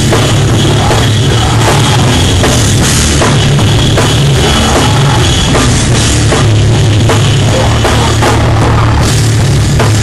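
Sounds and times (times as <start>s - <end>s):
live hardcore band playing: 0.0s - 10.0s.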